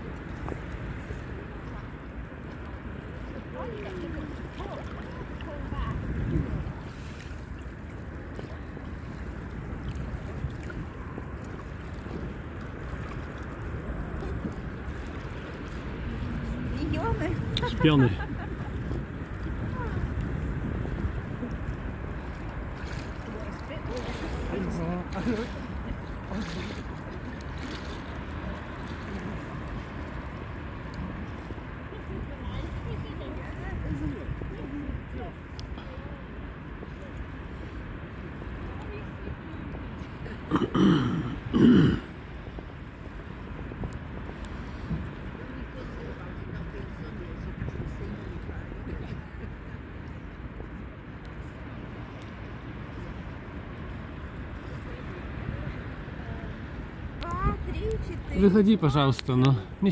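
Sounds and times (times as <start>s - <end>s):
wind rumbling on microphone: 0.0s - 59.9s
faint distant voices: 21.4s - 59.9s.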